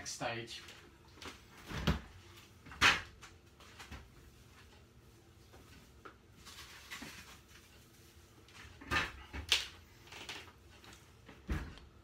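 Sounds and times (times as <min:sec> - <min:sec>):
kitchen rustles and knocks: 0:08.5 - 0:09.6, 0:11.3 - 0:12.0.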